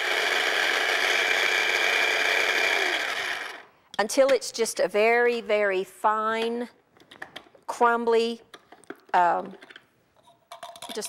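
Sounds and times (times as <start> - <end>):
electric food chopper running: 0.0 - 3.7.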